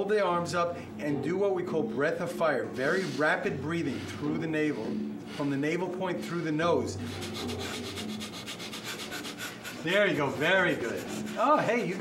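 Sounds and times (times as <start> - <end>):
people breathing rapidly through noses: 2.9 - 12.0.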